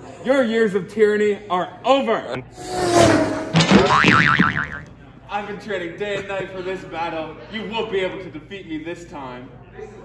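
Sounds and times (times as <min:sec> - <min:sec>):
cartoon boing tone: 0:03.6 - 0:04.9.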